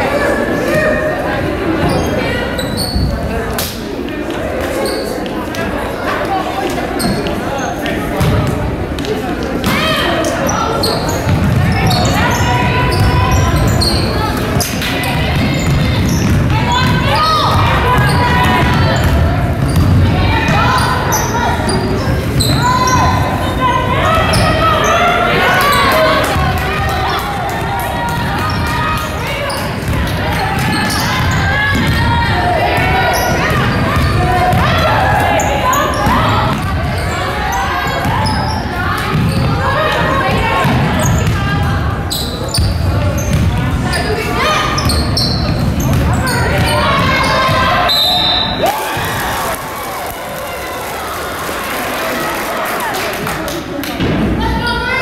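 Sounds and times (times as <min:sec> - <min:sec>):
players calling out: 0:00.0 - 0:55.0
basketball bouncing on hardwood floor: 0:11.3 - 0:12.0.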